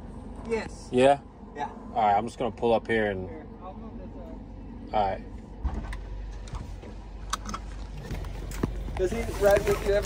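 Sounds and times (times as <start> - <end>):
van engine idling: 0.0 - 10.0.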